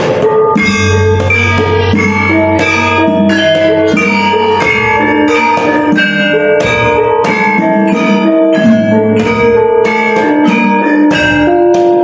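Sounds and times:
kendang drum: 0.0s - 12.0s
metallophones struck in a melody: 0.0s - 12.0s
deep sustained low tone: 0.7s - 5.3s.

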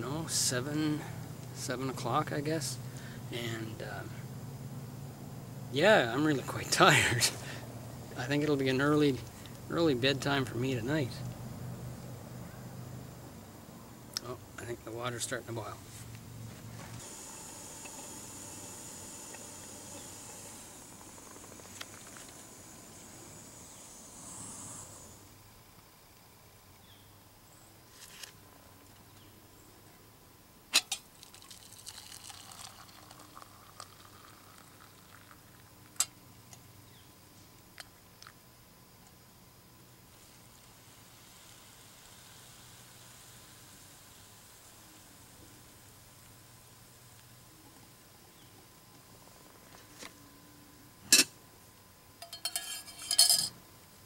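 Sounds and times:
kettle hissing on camp stove: 5.6s - 12.0s, 12.9s - 25.9s, 30.8s - 37.0s, 39.8s - 50.2s, 51.1s - 51.4s, 52.2s - 53.6s
hot water pouring into mug: 16.9s - 25.0s, 31.2s - 36.0s.

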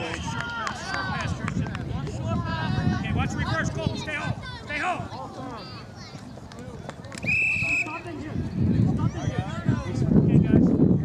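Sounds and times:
faint voices: 0.0s - 11.0s
referee's whistle blast: 7.2s - 8.0s.

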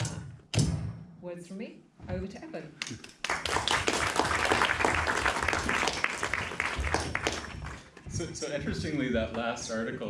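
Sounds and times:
audience applauding: 2.8s - 8.0s.

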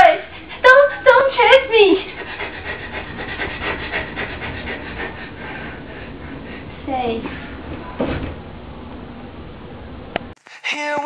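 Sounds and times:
ragged breathing: 0.2s - 7.6s.

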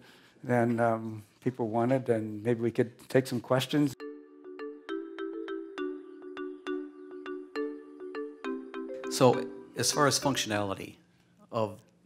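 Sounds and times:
held low chord: 4.0s - 10.6s.

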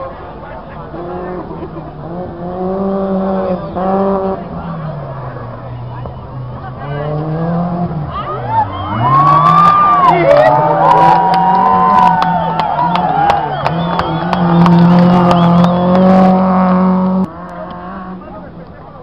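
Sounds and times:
rally car engine running hard: 0.0s - 19.0s
spectators talking: 0.0s - 19.0s
person laughing: 1.3s - 1.9s.

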